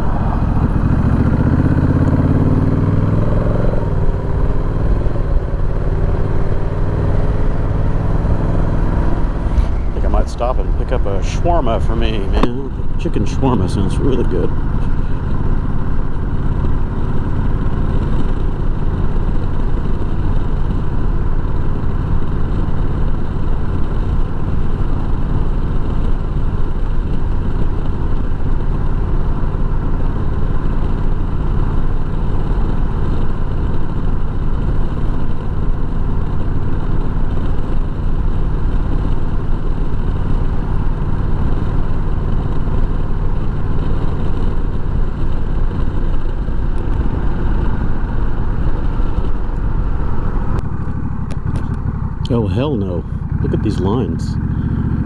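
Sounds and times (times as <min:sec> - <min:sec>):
motorcycle engine running: 0:00.0 - 0:55.0.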